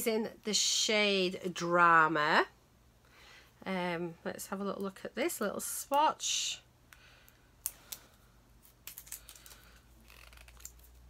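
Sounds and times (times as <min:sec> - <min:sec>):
plastic clicks and crinkles: 0:07.6 - 0:11.0.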